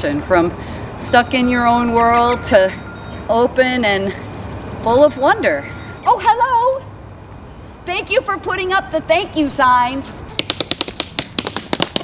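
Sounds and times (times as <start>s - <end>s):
tap shoes on wooden board: 10.4s - 12.0s.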